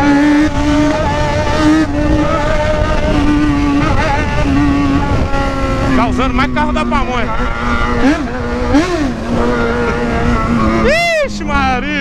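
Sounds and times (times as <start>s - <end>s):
motorcycle engine running: 0.0s - 12.0s
wind rush on microphone: 0.0s - 12.0s.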